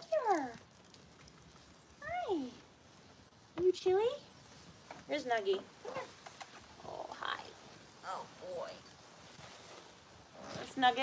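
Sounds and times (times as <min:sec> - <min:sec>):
faint clicks: 0:00.2 - 0:02.0, 0:04.8 - 0:06.8.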